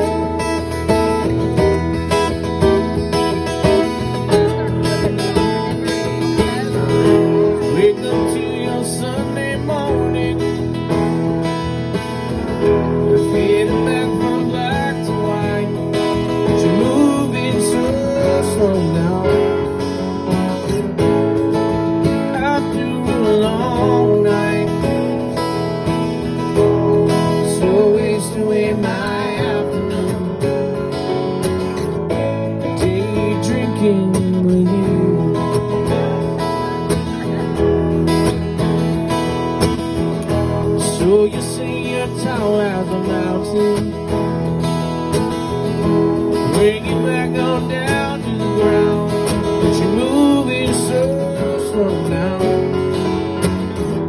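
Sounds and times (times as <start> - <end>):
acoustic guitars strumming: 0.0 - 54.0.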